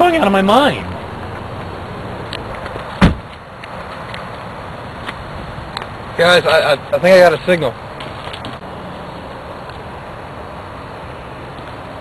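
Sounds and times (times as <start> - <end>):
steady background hiss: 0.0 - 12.0
sharp thump: 2.6 - 3.4.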